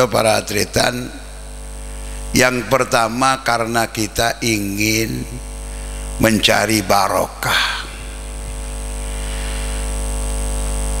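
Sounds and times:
electrical mains hum and buzz: 0:00.0 - 0:11.0.

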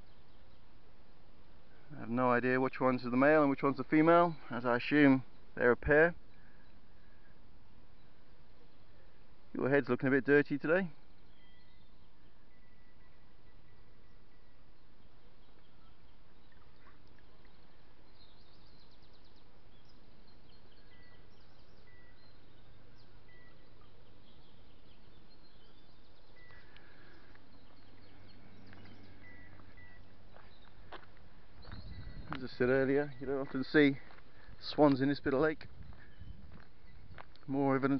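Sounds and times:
outdoor background noise: 0:00.0 - 0:37.9
birds chirping and whistling: 0:10.6 - 0:37.9.

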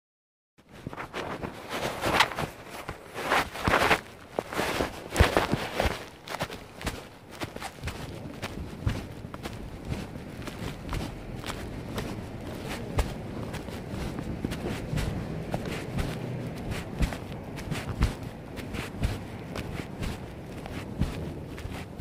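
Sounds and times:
footsteps: 0:00.7 - 0:22.0
rustling: 0:00.7 - 0:22.0.

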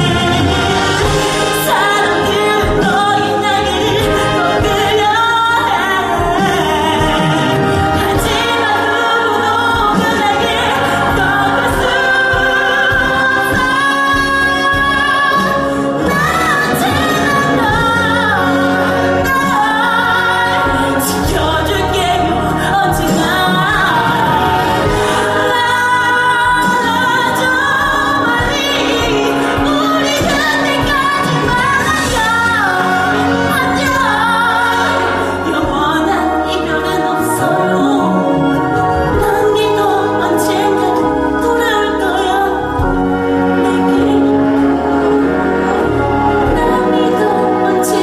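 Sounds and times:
instrumental accompaniment: 0:00.0 - 0:48.0
woman singing a ballad: 0:00.0 - 0:48.0.

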